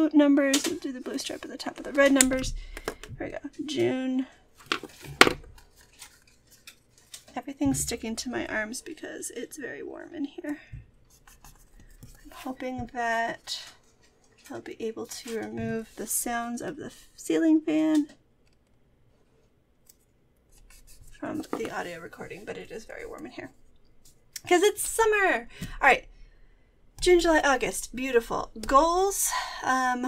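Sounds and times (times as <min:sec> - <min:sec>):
soft rubbing on paper: 0:11.0 - 0:16.2, 0:20.5 - 0:24.2.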